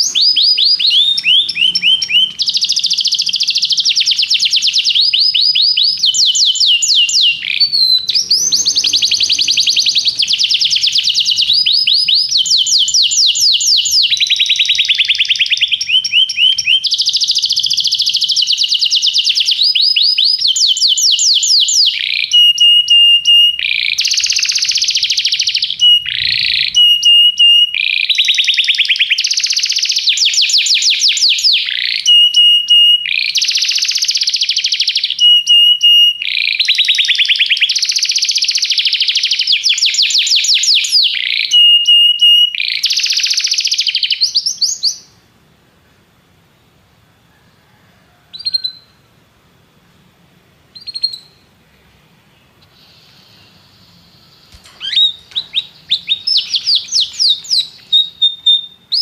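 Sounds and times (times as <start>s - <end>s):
canary singing trills: 0.0s - 45.2s, 48.3s - 49.0s, 50.7s - 59.0s.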